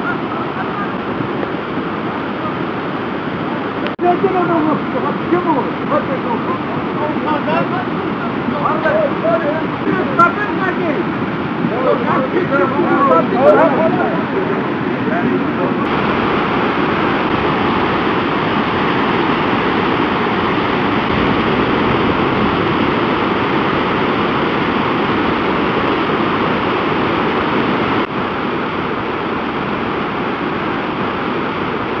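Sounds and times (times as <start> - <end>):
river water rushing over boulders: 0.0 - 32.0.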